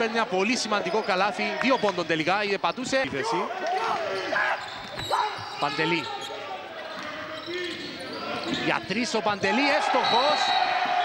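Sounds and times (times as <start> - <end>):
indoor arena noise: 0.0 - 11.0
man commentating: 8.6 - 10.5.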